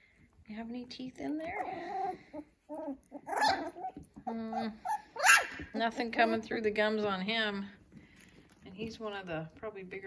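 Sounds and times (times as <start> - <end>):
puppy whimpering: 1.4 - 6.4
puppy yip: 2.0 - 4.0, 4.8 - 5.7.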